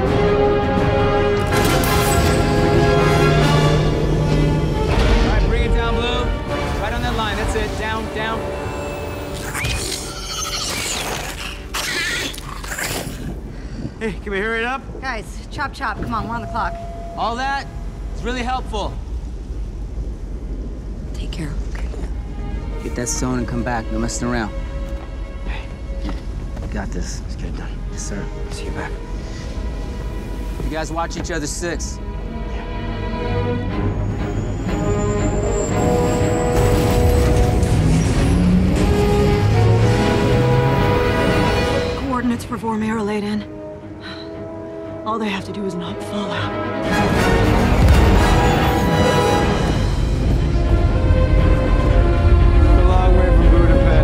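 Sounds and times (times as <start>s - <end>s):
film score: 0.0s - 54.0s
spacecraft machinery creaking and whirring: 9.0s - 13.3s.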